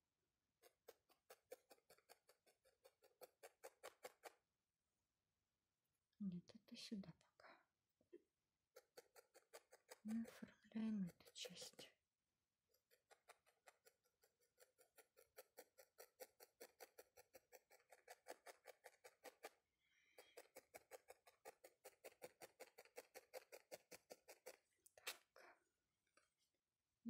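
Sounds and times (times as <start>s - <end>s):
felting needle pokes into foam: 0.6s - 4.4s, 8.7s - 11.9s, 12.7s - 19.6s, 20.2s - 25.3s.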